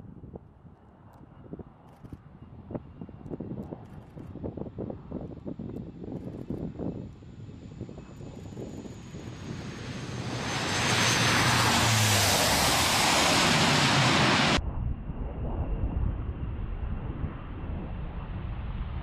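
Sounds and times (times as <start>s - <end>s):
wind buffeting microphone: 0.0s - 19.0s
turboprop engines roaring: 1.0s - 14.8s
low rumble: 10.9s - 19.0s.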